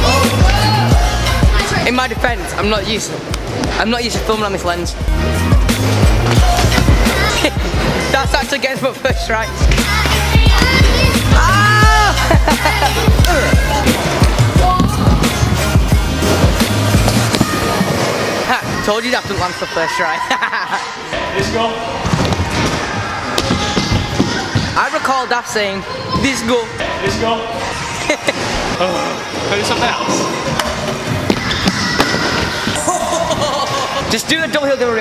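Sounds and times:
background music: 0.0s - 22.4s.

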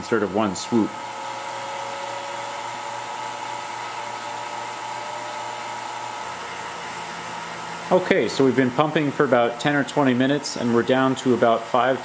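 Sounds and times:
vacuum pump whine: 0.0s - 12.0s.

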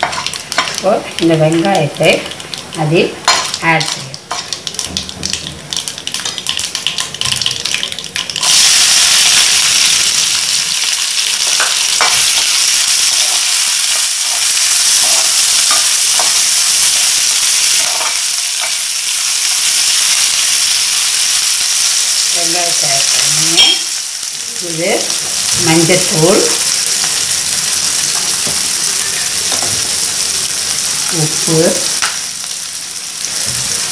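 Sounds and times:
hot oil sizzling: 0.0s - 33.9s.

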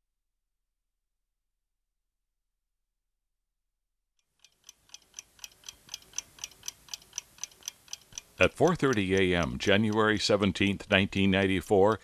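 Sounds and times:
clock ticking: 4.2s - 12.0s.

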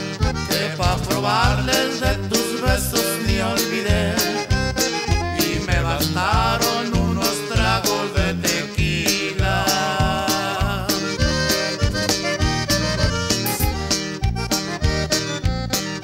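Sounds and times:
bajo sexto strumming: 0.0s - 16.0s
button accordion melody: 0.0s - 16.0s
drums keeping a steady beat: 0.0s - 16.0s
electric bass: 0.0s - 16.0s.

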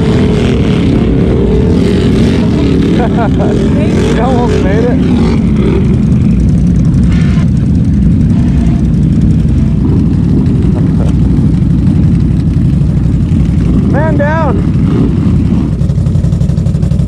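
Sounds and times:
engine idling: 0.0s - 17.0s.

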